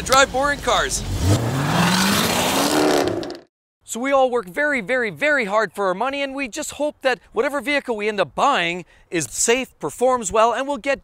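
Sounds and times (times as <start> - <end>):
car engine accelerating: 0.4 - 3.5.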